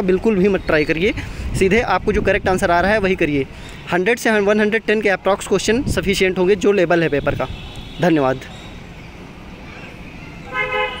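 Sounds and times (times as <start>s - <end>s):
horn toot: 10.5s - 11.0s.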